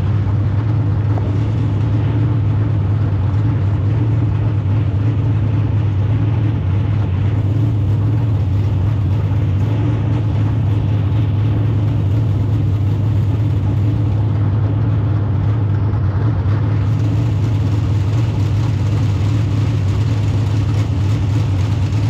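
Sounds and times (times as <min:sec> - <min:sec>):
race car engine idling: 0:00.0 - 0:22.0.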